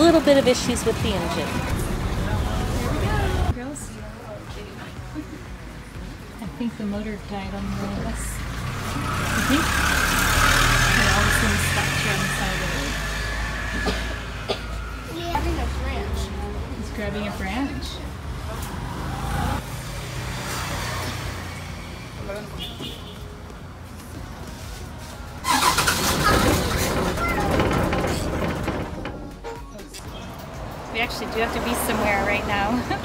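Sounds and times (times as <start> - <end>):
bus engine idling: 25.4 - 33.0.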